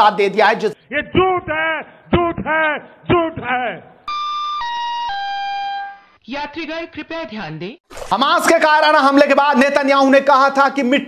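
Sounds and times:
descending electronic chime: 4.1 - 6.2.

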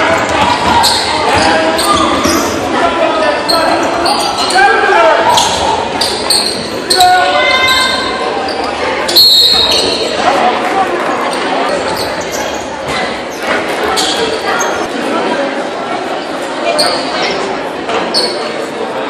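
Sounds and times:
crowd and players' voices: 0.0 - 19.0.

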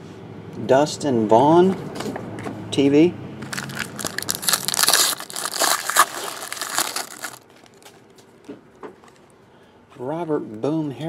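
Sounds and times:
foil wrapper crinkling and tearing: 3.4 - 8.0.

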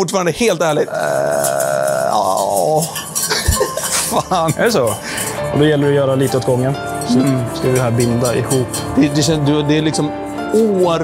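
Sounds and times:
whisk beating in metal saucepan: 1.2 - 11.0.

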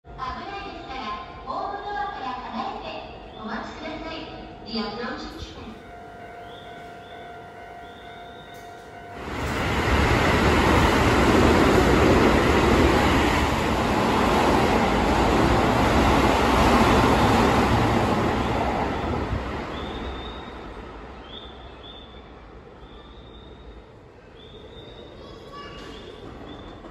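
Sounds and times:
train passing on rails: 0.1 - 26.9.

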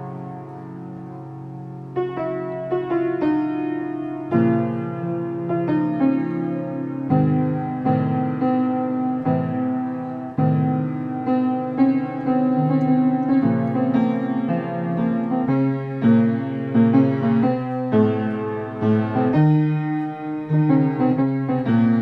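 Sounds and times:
solo piano chords: 0.0 - 22.0.

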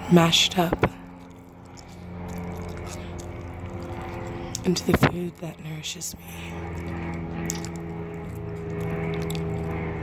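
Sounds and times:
low hum of held tones: 0.0 - 10.0.

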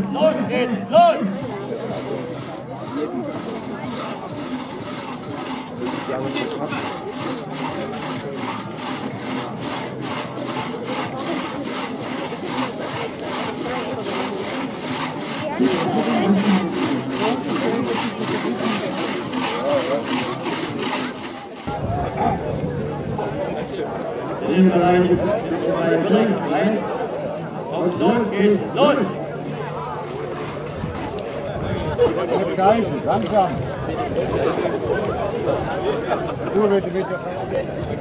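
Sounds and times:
crosscut saws rasping through logs: 1.0 - 21.8, 28.1 - 38.0.

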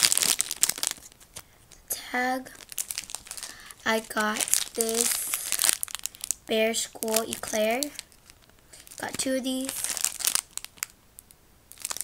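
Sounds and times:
plastic bag crinkling: 0.0 - 1.9, 2.5 - 12.0.

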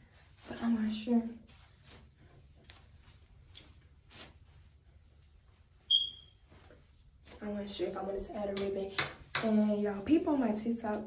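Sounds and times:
short high-pitched ping: 5.9 - 6.3.

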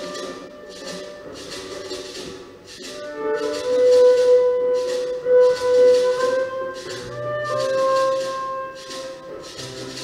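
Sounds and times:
banjo: 0.0 - 10.0
hand drum: 0.0 - 10.0
shaker rattling: 0.0 - 10.0.

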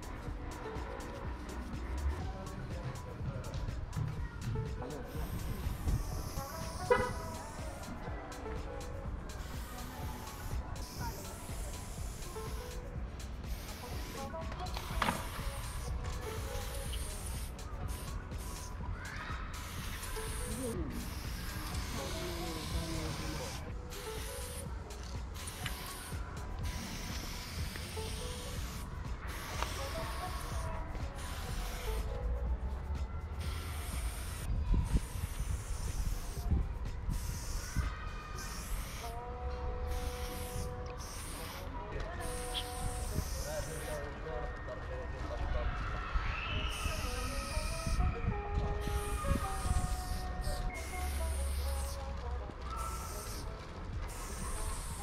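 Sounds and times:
spray paint can hissing: 0.1 - 44.2, 46.4 - 55.0.

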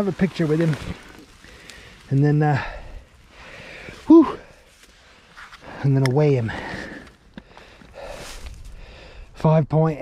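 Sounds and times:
soft handling rustling: 0.0 - 8.8.

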